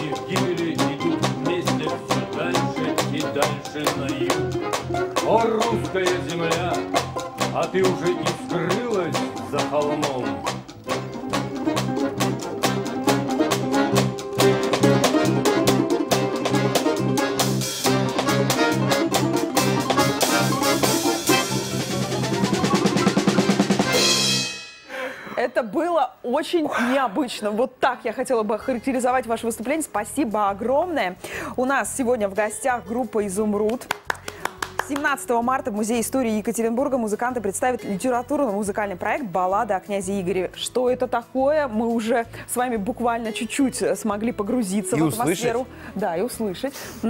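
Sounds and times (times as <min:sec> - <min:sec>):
folk instrument ensemble: 0:00.0 - 0:24.4, 0:41.7 - 0:47.0
quick drum kit beat: 0:00.0 - 0:24.6.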